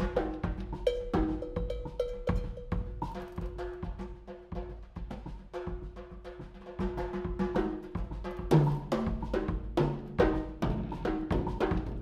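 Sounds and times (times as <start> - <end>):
hand drum strikes: 0.0 - 12.0.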